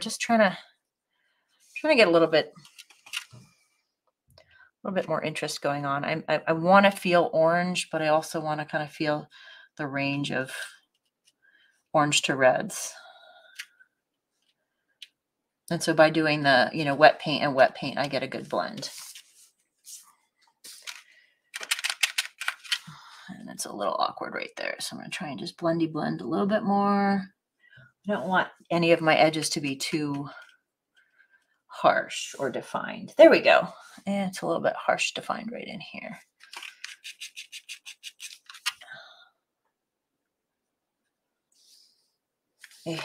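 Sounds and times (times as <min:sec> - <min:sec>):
paintbrush scrubbing on plate: 0:36.8 - 0:38.6.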